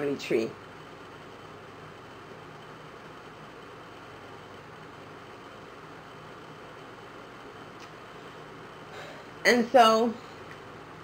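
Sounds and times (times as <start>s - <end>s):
faint recording hiss: 0.0s - 11.0s.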